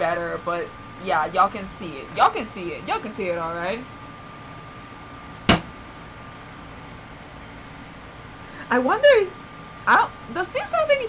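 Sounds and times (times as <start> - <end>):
air conditioner hum: 0.0 - 11.0
faint steady whine: 0.0 - 11.0
sharp knock: 5.5 - 5.7.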